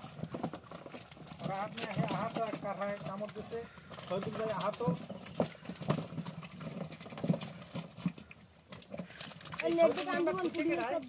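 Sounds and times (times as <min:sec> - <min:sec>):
wet squelches of feet in mud: 0:00.0 - 0:11.0.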